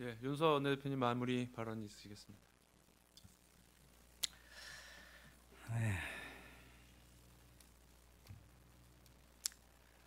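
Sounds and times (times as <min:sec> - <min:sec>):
man sighing into microphone: 0:04.5 - 0:06.8.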